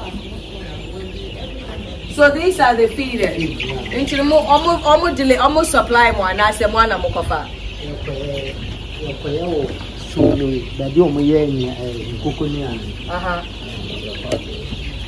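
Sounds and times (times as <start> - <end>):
flock of chicks calling: 0.0 - 15.0.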